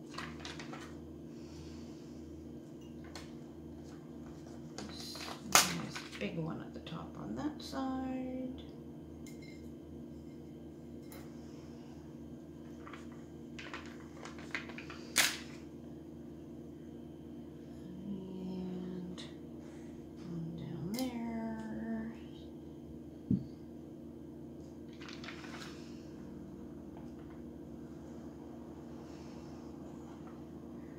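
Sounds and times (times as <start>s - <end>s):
steady low hum: 0.0s - 30.9s.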